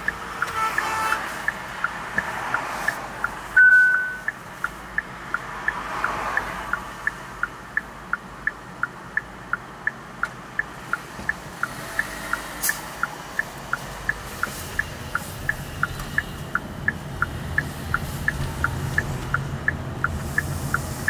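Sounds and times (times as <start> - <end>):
cabin road noise: 0.0 - 21.0
turn signal ticking: 0.0 - 21.0
short electronic beep: 3.6 - 4.3.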